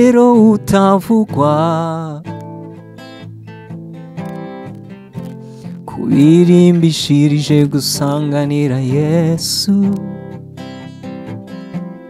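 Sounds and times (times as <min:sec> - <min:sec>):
man singing: 0:00.0 - 0:02.4, 0:05.9 - 0:10.4
acoustic guitar strumming: 0:00.0 - 0:12.0.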